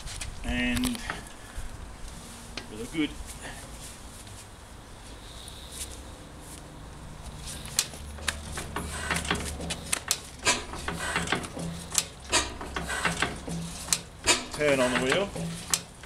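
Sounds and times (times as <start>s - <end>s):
engine turned over by hand: 7.5s - 16.0s.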